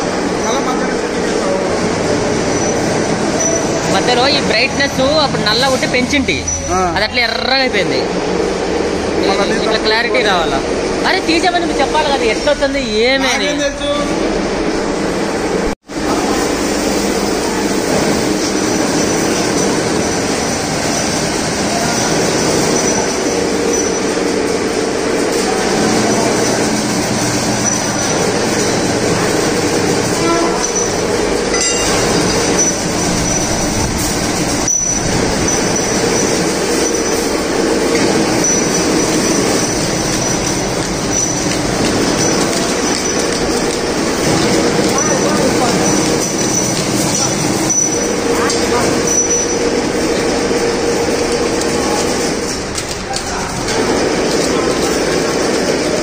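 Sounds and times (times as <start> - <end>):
factory machinery clatter: 0.0 - 56.0.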